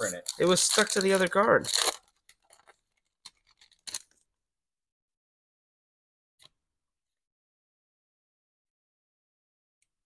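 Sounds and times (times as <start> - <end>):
foil wrapper rustling and crinkling: 0.0 - 4.2.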